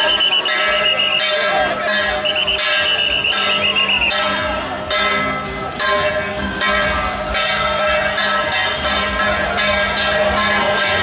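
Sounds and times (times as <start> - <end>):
shrill double-reed horn melody: 0.0 - 1.4, 2.2 - 4.3.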